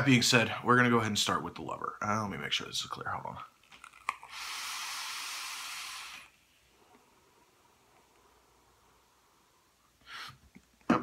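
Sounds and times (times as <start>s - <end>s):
hiss of air rushing: 4.4s - 6.3s.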